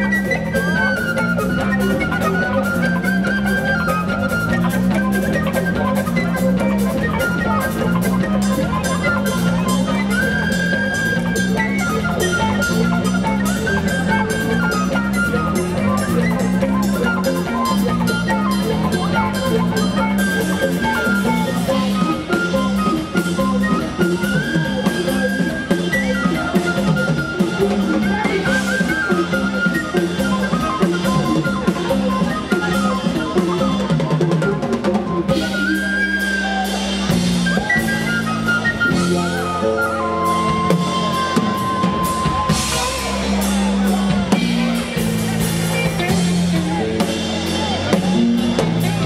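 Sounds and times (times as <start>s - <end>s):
whistle melody: 0.0s - 48.4s
folk-rock band playing live: 0.0s - 49.0s.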